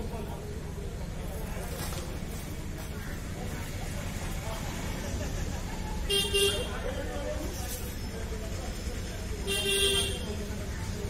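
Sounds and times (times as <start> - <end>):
street traffic rumble: 0.0 - 11.0
vehicle horn honking: 6.1 - 6.8, 9.5 - 10.3.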